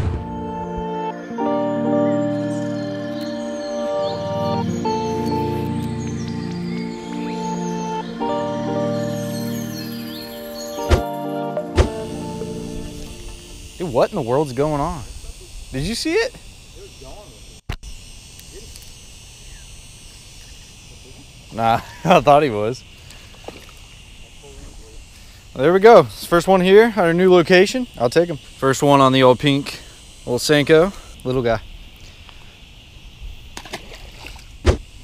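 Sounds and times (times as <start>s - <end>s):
high-pitched insect chorus: 0.0s - 35.0s
short thump: 11.8s - 12.0s
fish splashing into water: 33.6s - 34.7s.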